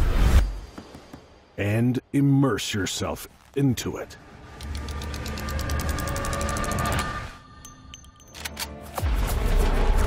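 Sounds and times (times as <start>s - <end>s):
rotary knob clicking: 4.6s - 7.1s.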